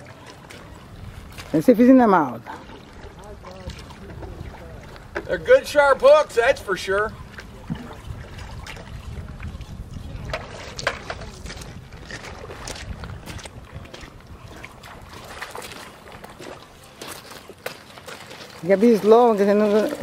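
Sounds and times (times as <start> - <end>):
wind rumbling on microphone: 0.0 - 1.6, 2.6 - 16.9
river water: 0.0 - 20.0.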